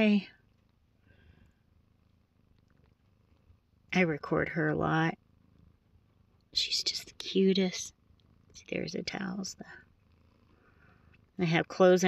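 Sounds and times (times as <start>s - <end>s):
woman's voice: 0.0s - 0.4s, 4.0s - 5.2s, 6.6s - 7.9s, 8.6s - 9.8s, 11.4s - 12.0s
cat purring: 0.0s - 12.0s.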